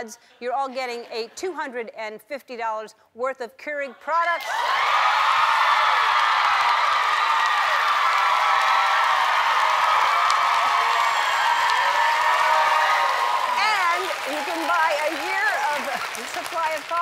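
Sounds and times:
studio audience cheering and clapping: 4.4s - 17.0s.

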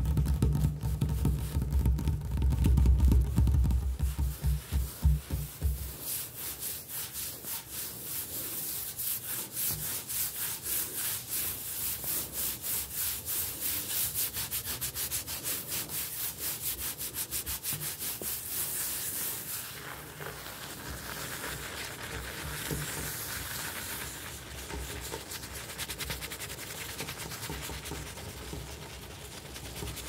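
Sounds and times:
low thumps on counter: 0.0s - 5.9s
nails scratching on countertop: 4.0s - 30.0s.

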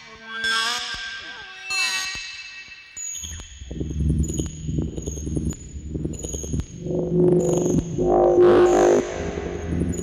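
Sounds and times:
low pulsing synthesizer tones: 3.6s - 10.0s
bright steady synth tone: 6.8s - 10.0s.

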